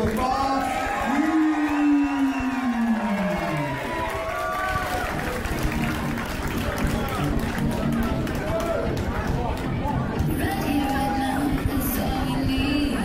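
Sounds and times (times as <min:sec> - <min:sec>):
crowd noise: 0:00.0 - 0:13.0
music: 0:03.9 - 0:13.0.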